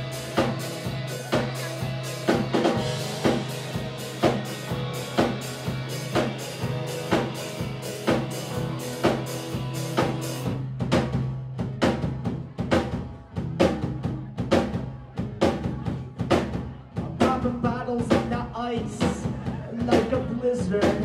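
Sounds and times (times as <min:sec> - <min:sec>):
bass and keyboards: 0:00.0 - 0:21.0
drum kit beat: 0:00.0 - 0:21.0.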